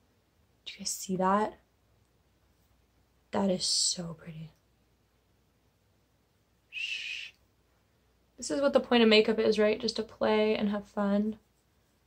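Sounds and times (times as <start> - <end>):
woman whistling: 6.7 - 7.3.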